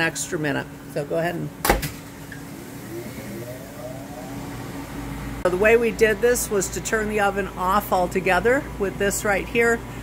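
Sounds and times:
electrical hum: 0.0s - 10.0s
oven fan motor whine rising: 2.0s - 10.0s.

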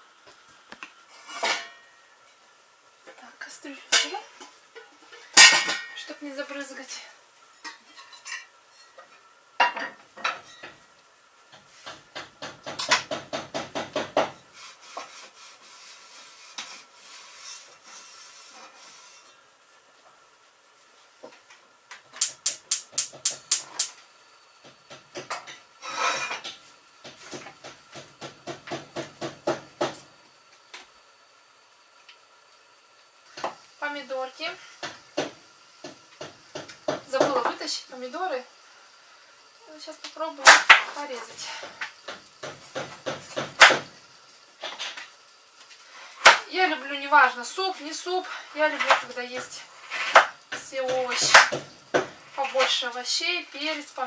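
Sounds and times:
utensils scraping a metal pot: 14.5s - 19.4s, 25.8s - 26.5s.

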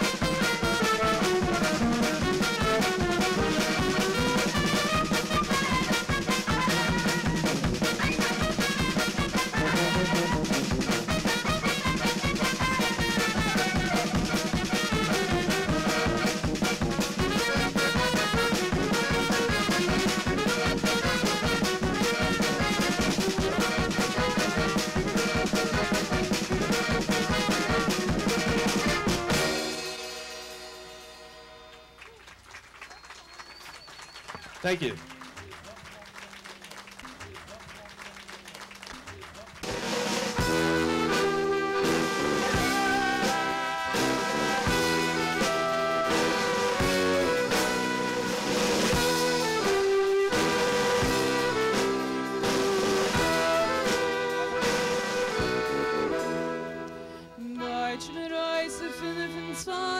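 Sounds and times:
klezmer band playing: 0.0s - 59.9s.

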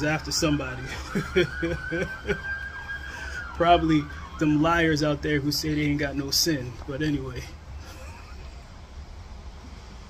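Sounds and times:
police siren wailing: 0.0s - 8.8s.

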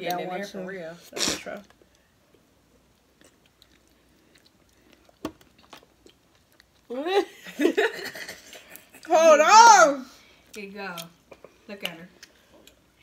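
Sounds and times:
soft chewing: 1.5s - 6.9s, 8.2s - 9.1s, 10.2s - 13.0s.

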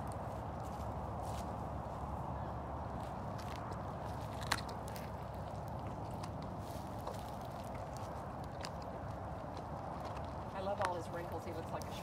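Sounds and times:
low outdoor rumble: 0.0s - 12.0s
lion chewing and licking: 3.0s - 12.0s.

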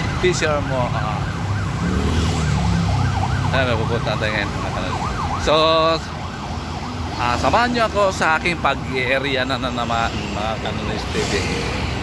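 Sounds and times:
siren yelping: 0.0s - 9.9s
road traffic rumble: 0.0s - 12.0s.

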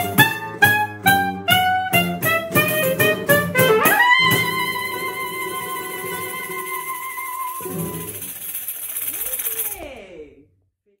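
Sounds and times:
tambourine jingles shaken: 5.5s - 10.0s.

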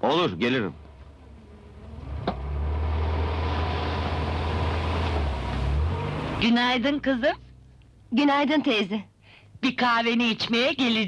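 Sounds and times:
car engine pulling away: 0.4s - 7.2s.

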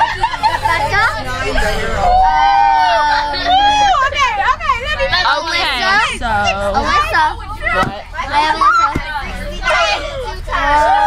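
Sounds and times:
bus rumbling: 0.0s - 11.0s
girls' voices: 0.0s - 11.0s.

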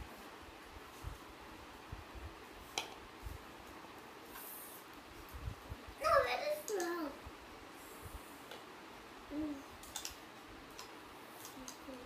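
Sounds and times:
person humming mm-hmm: 9.3s - 9.7s.

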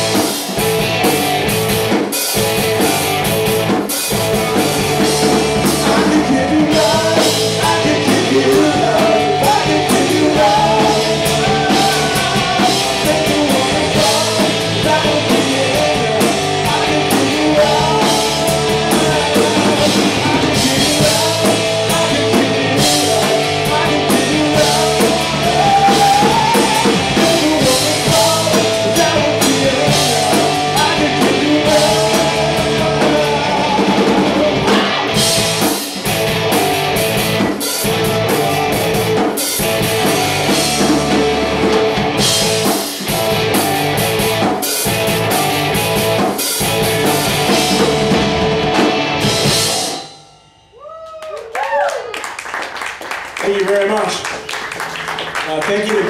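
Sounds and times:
live rock band playing: 0.0s - 51.4s
man singing: 5.5s - 35.3s.

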